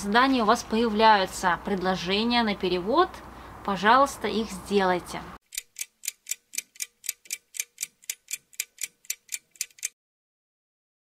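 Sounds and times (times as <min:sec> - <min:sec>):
rapid clock-like ticking: 0:05.4 - 0:10.0.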